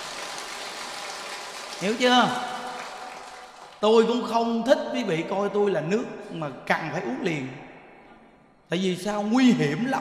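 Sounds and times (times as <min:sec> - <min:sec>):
man talking: 0:01.8 - 0:02.8, 0:03.8 - 0:07.7, 0:08.6 - 0:10.0.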